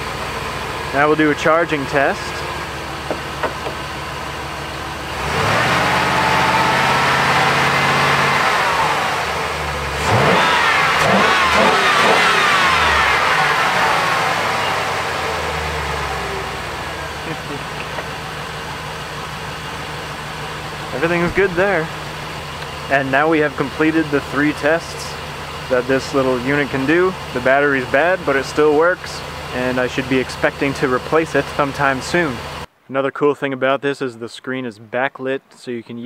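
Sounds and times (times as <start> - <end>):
van engine idling and revving: 0.0 - 32.7.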